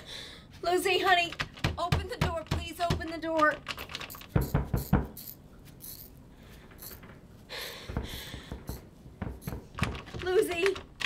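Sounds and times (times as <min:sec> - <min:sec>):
knocking on a door: 0:01.4 - 0:03.2, 0:04.3 - 0:05.1, 0:08.0 - 0:09.8.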